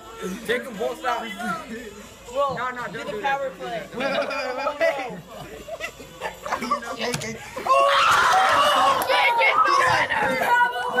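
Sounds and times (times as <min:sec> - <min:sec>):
young people shouting: 0:07.6 - 0:11.0.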